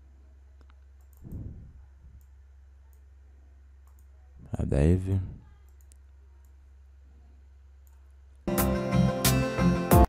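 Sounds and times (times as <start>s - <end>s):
steady low hum: 0.0s - 8.5s
computer mouse clicks: 0.6s - 1.4s, 3.8s - 4.1s, 5.6s - 6.6s.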